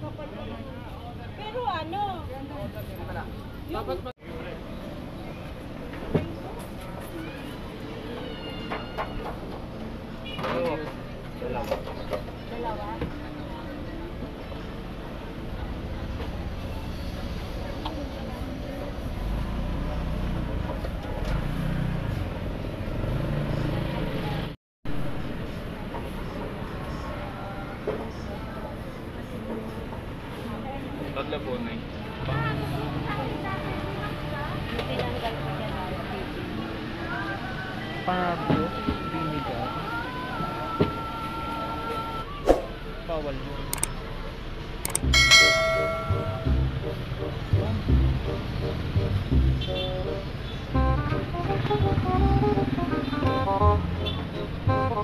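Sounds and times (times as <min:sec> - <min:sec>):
passing traffic rumble: 0:12.1 - 0:40.3, 0:42.3 - 0:55.0
people talking: 0:37.9 - 0:42.2
background music with steady beat: 0:45.0 - 0:55.0
bright bell chime: 0:45.1 - 0:46.7.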